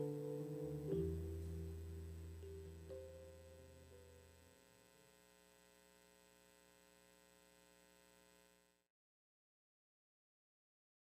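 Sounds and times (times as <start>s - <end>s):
faint steady hum: 0.0s - 8.9s.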